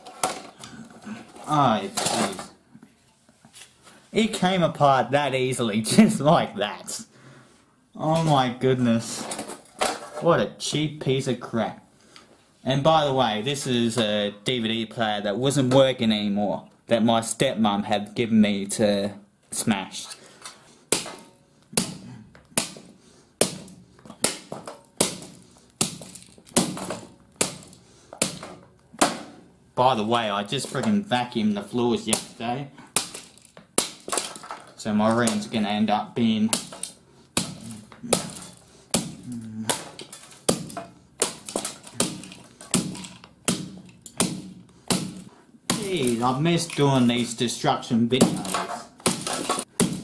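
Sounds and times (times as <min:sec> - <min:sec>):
hatchet striking plastic casing: 0:20.9 - 0:29.5, 0:32.1 - 0:35.6, 0:36.5 - 0:47.3, 0:48.2 - 0:50.0.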